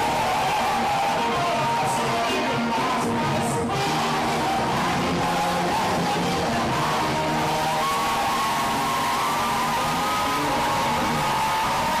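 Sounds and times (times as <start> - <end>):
distorted live praise music: 0.0 - 12.0.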